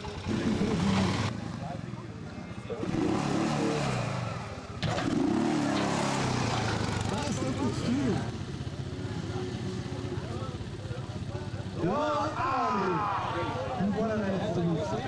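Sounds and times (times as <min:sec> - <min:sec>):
quad bike engines revving: 0:00.0 - 0:15.0
people talking: 0:07.0 - 0:15.0.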